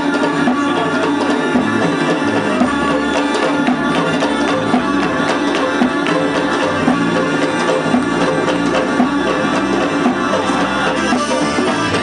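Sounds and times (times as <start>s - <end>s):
drums driving beat: 0.0s - 12.0s
guitar: 0.0s - 12.0s.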